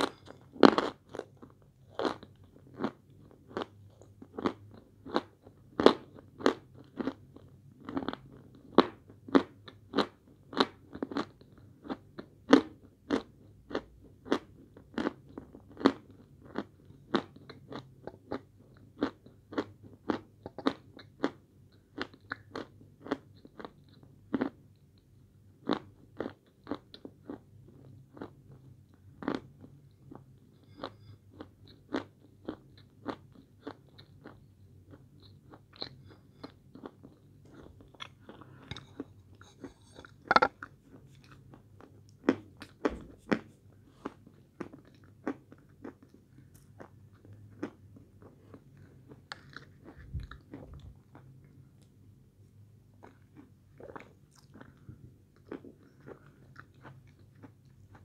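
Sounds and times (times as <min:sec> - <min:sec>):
crunching and chewing chalk: 0:00.0 - 0:52.0, 0:52.9 - 0:58.0.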